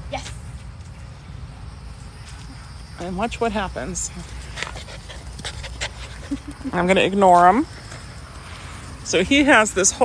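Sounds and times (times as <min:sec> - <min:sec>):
puppy panting: 0:04.3 - 0:08.2.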